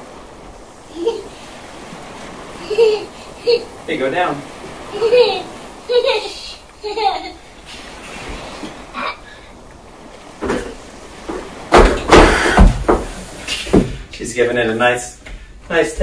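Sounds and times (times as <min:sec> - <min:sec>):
small child's voice: 0:04.9 - 0:07.4
hand pump rush of air: 0:12.0 - 0:13.7.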